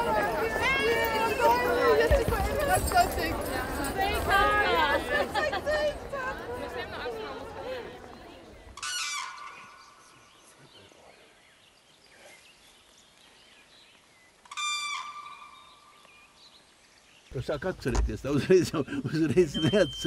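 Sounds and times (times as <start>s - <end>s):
bird calling: 8.7s - 11.4s, 14.3s - 16.7s, 18.8s - 20.0s.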